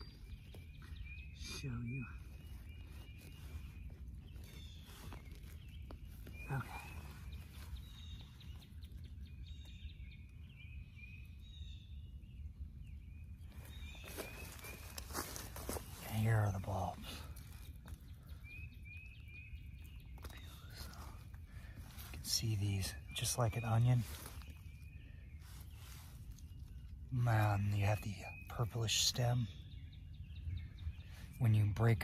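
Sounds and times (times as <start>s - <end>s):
hands digging in soil and leaves: 0.0s - 9.2s, 13.4s - 27.8s
bird chirping: 0.0s - 32.0s.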